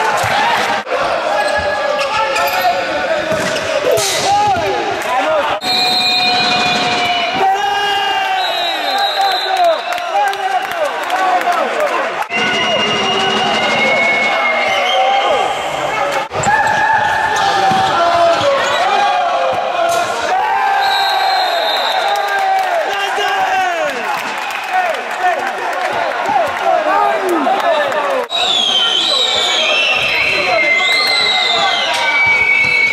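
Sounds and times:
spectators' voices: 0.0 - 32.9.

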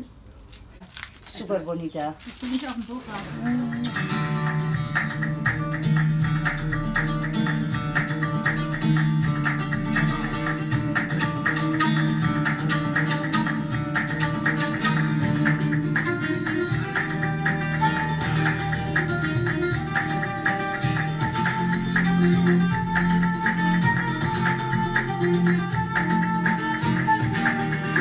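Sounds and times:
flamenco acoustic guitar: 2.6 - 28.0.

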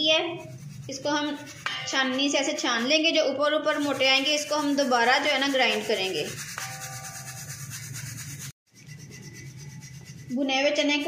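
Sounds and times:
powder rustling in metal sieve: 0.0 - 11.0.

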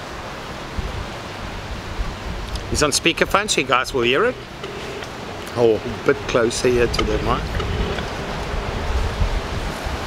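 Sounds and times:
even hiss: 0.0 - 10.0.

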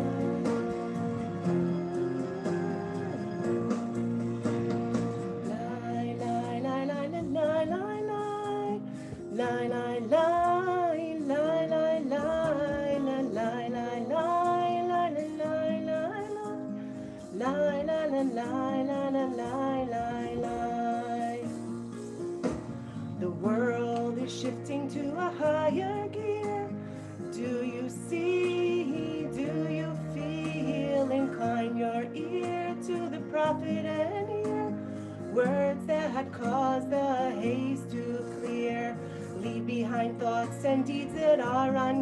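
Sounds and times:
woman singing slow song: 0.0 - 3.9, 5.3 - 21.8, 22.9 - 42.0
instrumental backing track: 0.0 - 42.0.

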